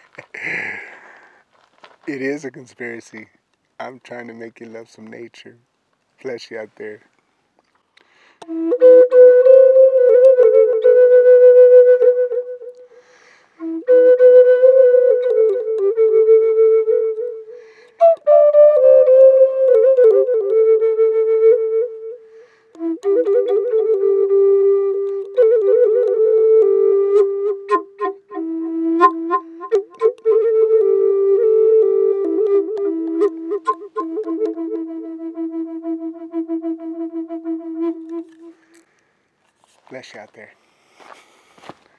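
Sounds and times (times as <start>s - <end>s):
flute melody: 8.4s - 38.8s.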